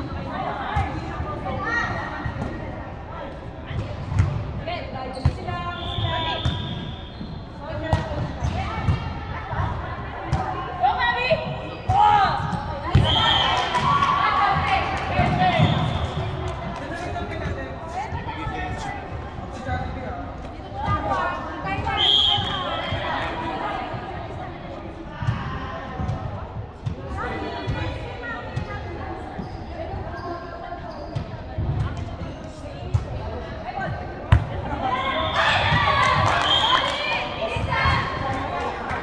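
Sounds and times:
voices echoing in a hall: 0:00.0 - 0:39.0.

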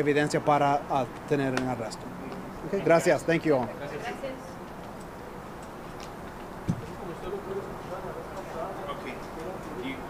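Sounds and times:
dull thump: 0:06.7 - 0:06.9.

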